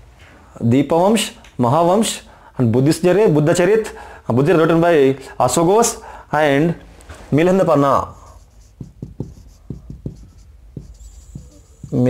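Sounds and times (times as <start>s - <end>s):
marker pen writing on whiteboard: 8.1s - 12.0s.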